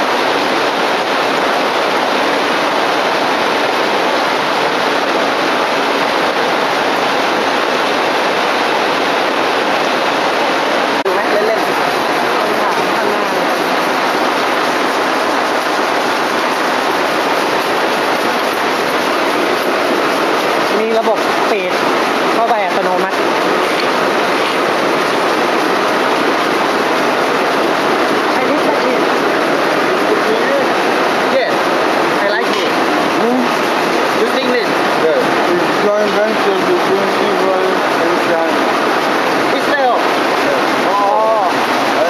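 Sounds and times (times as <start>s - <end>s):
silk-reeling machinery running: 0.0s - 42.0s
people talking: 11.1s - 14.0s, 20.7s - 21.8s, 22.4s - 24.6s, 28.3s - 29.2s, 30.1s - 31.6s, 32.2s - 33.6s, 34.2s - 38.6s, 39.5s - 42.0s.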